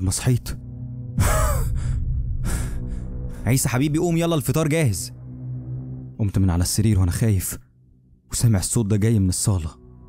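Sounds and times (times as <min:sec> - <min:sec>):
low music drone: 0:00.0 - 0:10.0
person gasping: 0:01.2 - 0:03.4.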